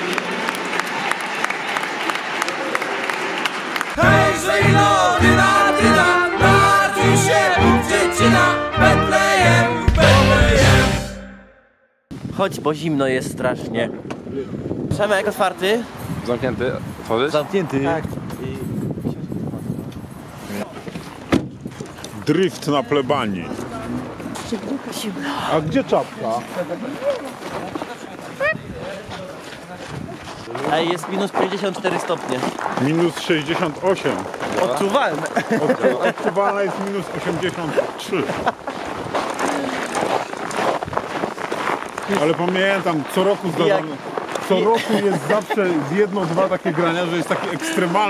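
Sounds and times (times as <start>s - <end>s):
footsteps crunching on snow: 25.8s - 48.0s.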